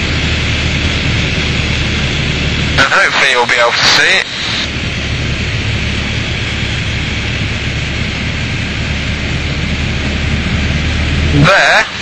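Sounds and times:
aircraft engine and propeller droning: 0.0s - 12.0s.

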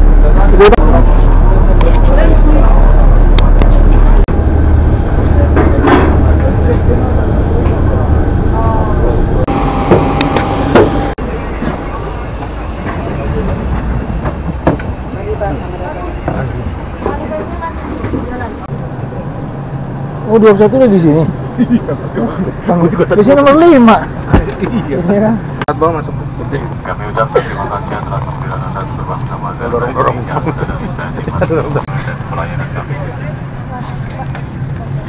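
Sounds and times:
low hum with high whine: 0.0s - 12.9s
bus engine rumble: 0.0s - 35.0s
passengers' voices: 0.0s - 35.0s.

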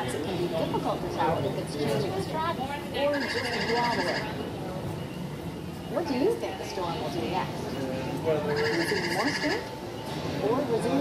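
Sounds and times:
people talking: 0.0s - 5.0s, 5.9s - 11.0s.

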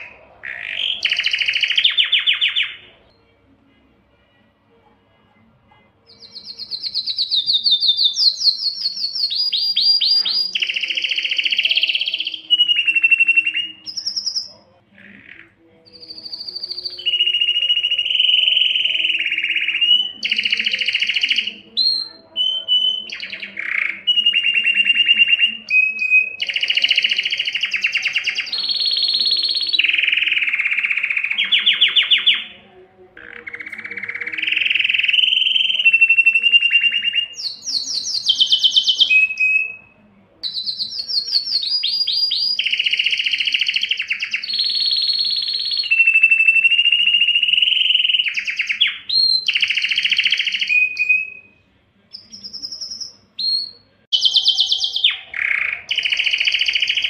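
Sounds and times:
canary singing trills: 0.0s - 4.5s, 5.1s - 57.0s.

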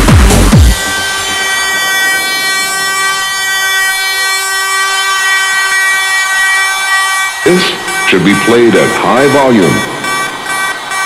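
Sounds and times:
held synth chord: 0.0s - 11.0s.

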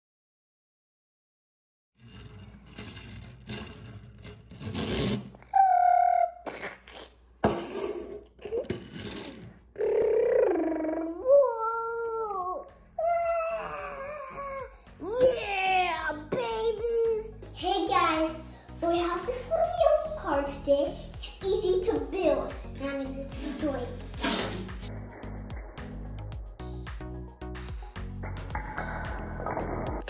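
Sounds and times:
young child's vocal whoops: 5.5s - 6.5s, 9.8s - 14.7s.

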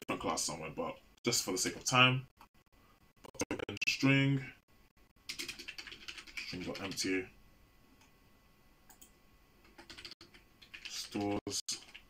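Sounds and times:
computer keyboard typing: 5.3s - 7.1s, 8.9s - 12.0s.

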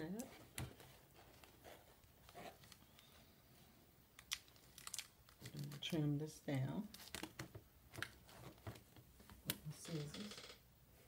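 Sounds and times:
contact paper crinkling: 0.2s - 6.2s, 6.8s - 9.7s.

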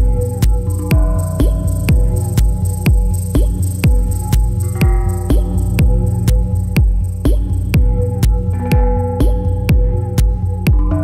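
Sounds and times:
kick drum: 0.0s - 11.0s
techno music: 0.0s - 11.0s.

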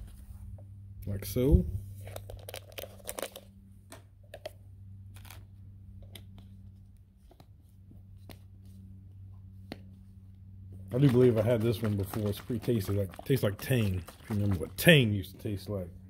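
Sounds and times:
steady low hum: 0.0s - 16.0s
plastic bottle clicks and crinkles: 2.1s - 3.5s, 10.9s - 14.8s.

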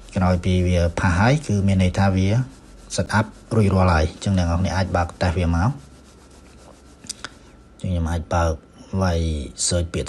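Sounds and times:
faint steady hiss: 0.0s - 10.0s
man speaking: 0.1s - 5.8s, 7.8s - 10.0s.

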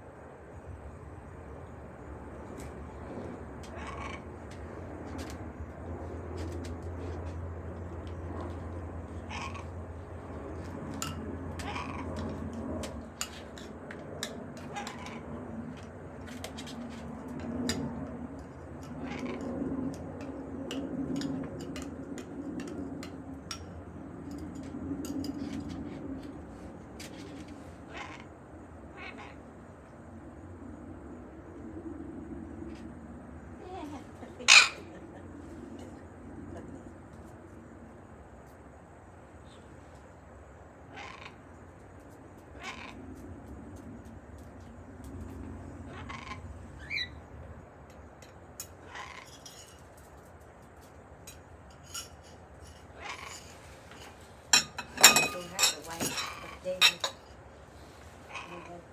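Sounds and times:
drawn-out low parrot sound: 2.6s - 23.6s, 52.4s - 55.4s, 56.0s - 58.9s
parrots making cat-like sounds: 3.6s - 4.5s, 9.1s - 10.0s, 11.5s - 12.4s, 14.5s - 15.3s, 18.8s - 20.0s, 27.7s - 29.6s, 40.9s - 41.5s, 42.4s - 43.2s, 45.8s - 47.2s, 48.7s - 49.5s, 52.8s - 53.7s, 58.2s - 58.9s.

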